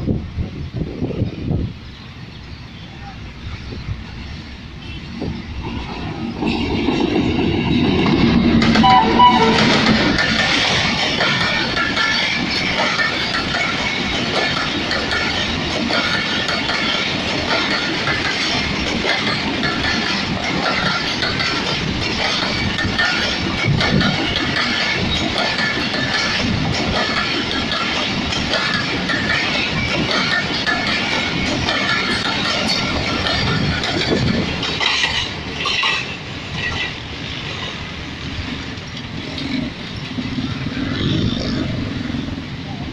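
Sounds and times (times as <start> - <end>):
diesel locomotive passing: 0.0 - 42.9
train coaches rumbling on rails: 0.0 - 42.9.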